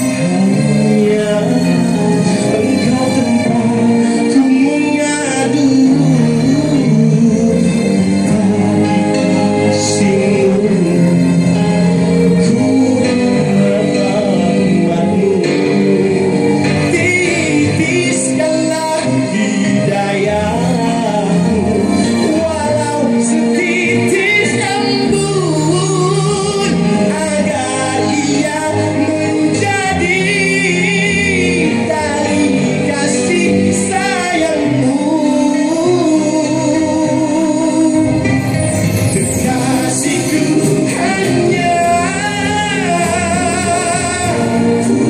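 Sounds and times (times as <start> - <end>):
man singing into microphone: 0.0 - 45.0
musical accompaniment: 0.0 - 45.0.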